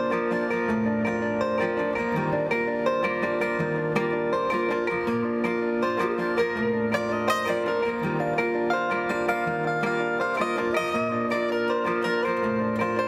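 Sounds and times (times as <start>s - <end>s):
acoustic guitar picking and strumming: 0.0s - 13.0s.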